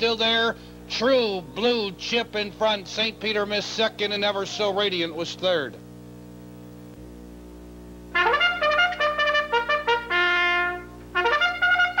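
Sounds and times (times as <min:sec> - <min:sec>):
low steady hum: 0:00.0 - 0:12.0
trumpet-led brass music: 0:08.1 - 0:12.0.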